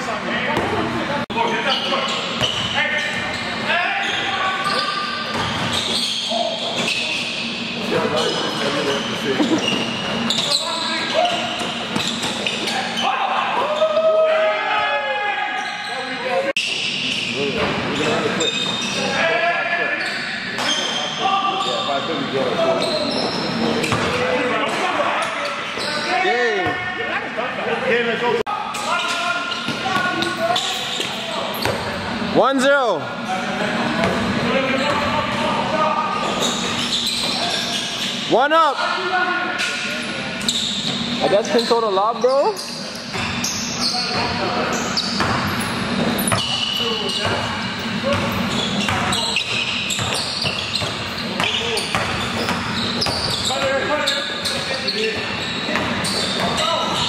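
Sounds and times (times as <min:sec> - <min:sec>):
players' voices: 0:00.0 - 0:57.0
shoe squeals: 0:01.3 - 0:27.0, 0:28.6 - 0:32.3, 0:34.1 - 0:57.0
basketball bouncing on court: 0:05.3 - 0:06.0, 0:23.8 - 0:24.2, 0:46.3 - 0:53.8, 0:54.5 - 0:57.0.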